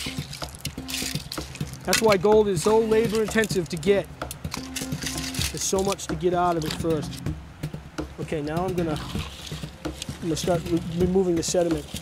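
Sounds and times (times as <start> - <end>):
wet stones clicking in metal pan: 0.0 - 6.9
creek water trickling: 0.0 - 12.0.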